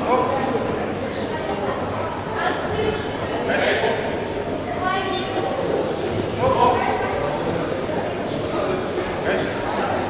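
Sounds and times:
background chatter: 0:00.0 - 0:10.0
voices echoing in a hall: 0:00.0 - 0:10.0.

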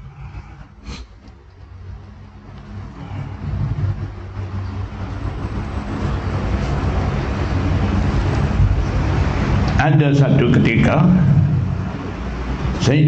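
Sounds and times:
low noisy rumble: 0:00.0 - 0:13.0.

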